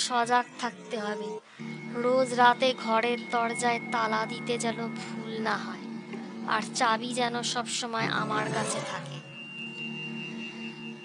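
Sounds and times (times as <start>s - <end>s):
high steady ringing tone: 0.0s - 11.0s
low sustained drone: 1.0s - 11.0s.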